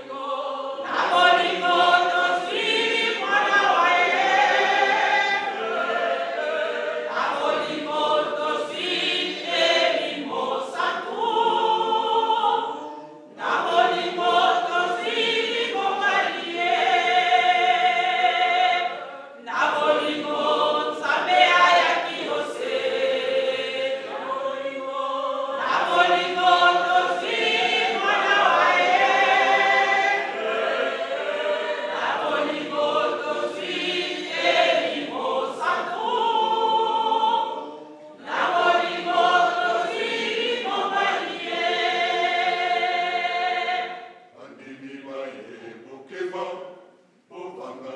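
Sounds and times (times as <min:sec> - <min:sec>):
mixed choir singing a hymn: 0:00.0 - 0:47.9.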